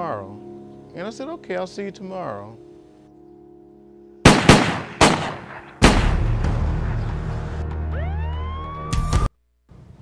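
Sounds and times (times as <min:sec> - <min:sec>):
echoing gunshots: 0:04.2 - 0:07.2.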